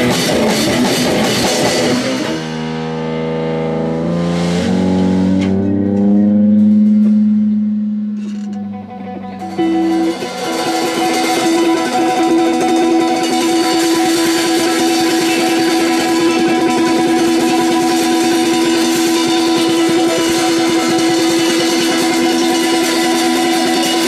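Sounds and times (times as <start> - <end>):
live rock band: 0.0 - 5.6, 8.9 - 24.0
held electric guitar notes: 0.0 - 24.0
picked electric guitar figure: 0.0 - 24.0.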